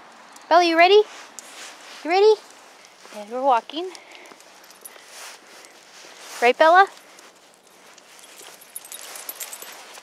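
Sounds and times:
faint footsteps: 0.4s - 10.0s.

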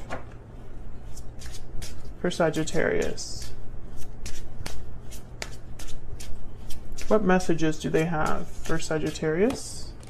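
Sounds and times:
cards being shuffled: 1.0s - 10.0s.

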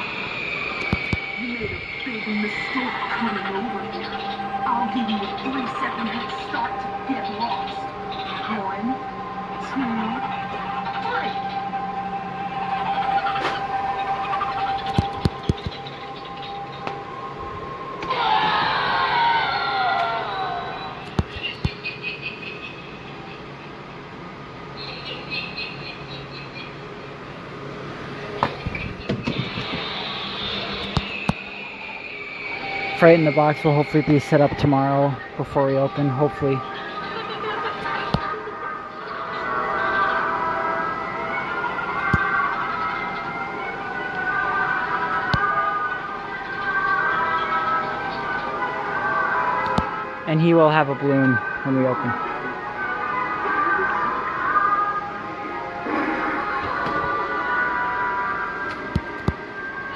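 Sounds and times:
spooky music: 0.0s - 28.7s, 29.5s - 59.9s.

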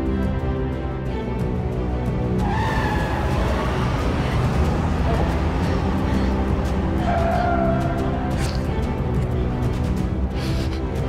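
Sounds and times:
drama background music: 0.0s - 11.0s
car speeding off on wet road: 2.4s - 8.8s.

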